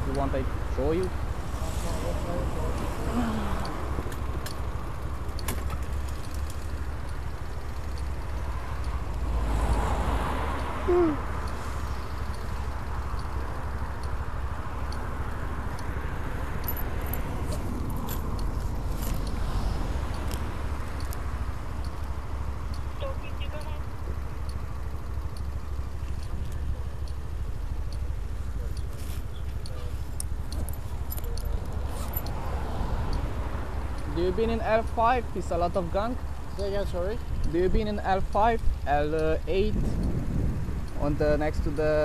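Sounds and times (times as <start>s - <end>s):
vehicle passing: 0.0s - 38.3s
street traffic rumble: 0.0s - 42.0s
faint regular tick: 5.3s - 9.9s, 11.4s - 14.2s, 15.7s - 15.9s, 20.1s - 21.2s, 21.8s - 22.9s, 24.0s - 32.4s, 33.1s - 33.3s, 37.3s - 37.6s, 38.3s - 41.0s.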